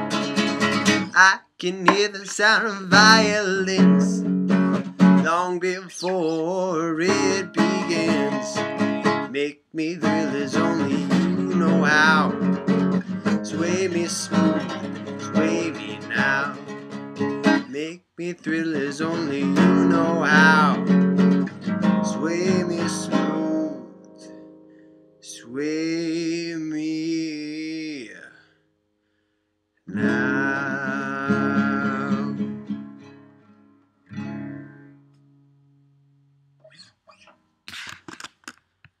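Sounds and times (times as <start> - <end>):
acoustic guitar strumming: 0.0 - 1.3, 1.9 - 9.4, 10.0 - 27.9, 29.9 - 37.4
man singing: 1.0 - 4.3, 5.2 - 16.7, 17.4 - 20.9, 21.9 - 23.9, 25.2 - 28.4, 29.9 - 32.6.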